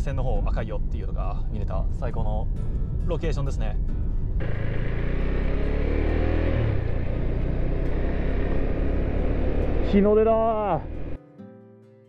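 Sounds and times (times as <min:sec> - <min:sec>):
road and wind rush: 0:00.0 - 0:11.2
vehicle engine rumble: 0:00.0 - 0:11.2.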